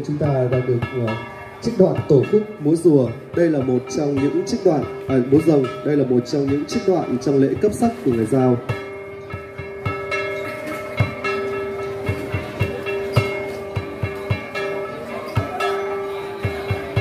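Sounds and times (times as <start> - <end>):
hand drum beating: 0.0 - 17.0.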